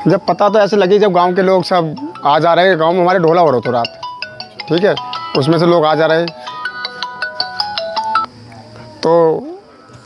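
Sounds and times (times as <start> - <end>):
mobile phone ringtone: 0.0 - 8.4.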